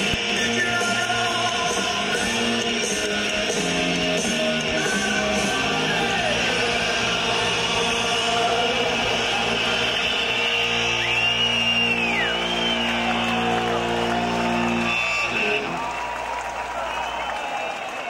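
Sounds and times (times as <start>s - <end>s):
punk rock band playing chord: 0.0s - 15.9s
crowd cheering: 0.0s - 18.0s
high whistle-like glides: 8.4s - 13.9s.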